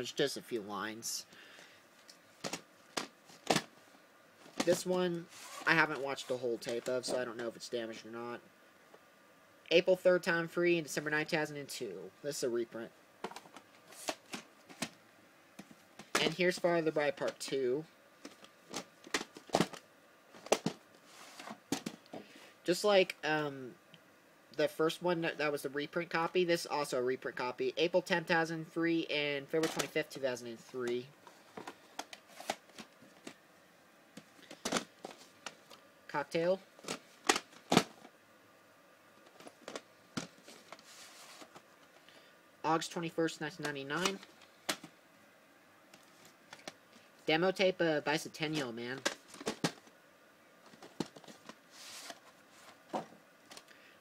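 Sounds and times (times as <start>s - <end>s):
plastic cassette clicks and rustles: 2.0s - 3.7s, 18.2s - 19.8s, 20.4s - 20.8s, 34.2s - 35.8s, 36.8s - 38.1s, 46.0s - 46.8s, 49.0s - 49.9s
plastic cases knocking: 18.3s - 19.8s, 49.0s - 49.9s, 50.7s - 51.5s.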